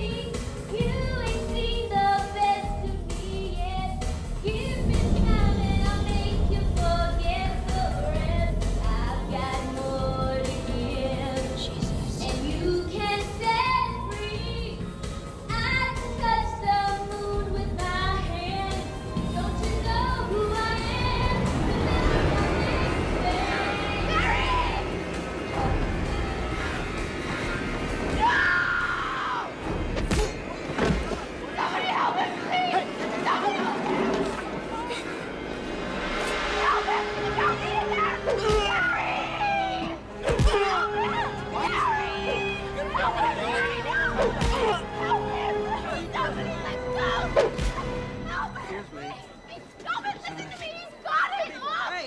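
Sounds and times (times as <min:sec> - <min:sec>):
tense film score: 0:00.0 - 0:52.0.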